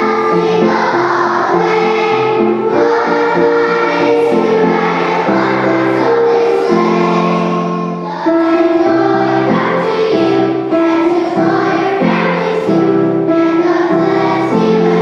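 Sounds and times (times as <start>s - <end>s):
children's choir singing: 0.0s - 15.0s.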